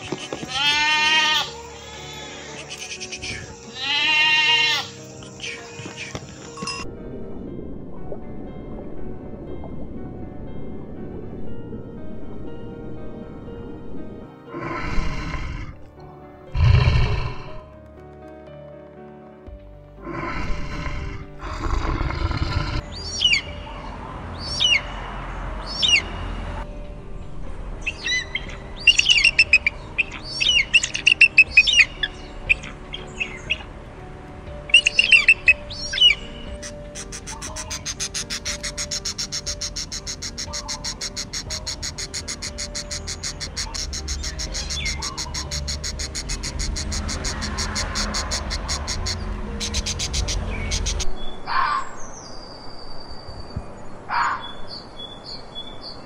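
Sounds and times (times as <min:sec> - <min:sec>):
shrill bird calls: 0:00.0 - 0:06.8, 0:27.9 - 0:33.7, 0:34.7 - 0:52.3
soft piano music: 0:00.0 - 0:56.0.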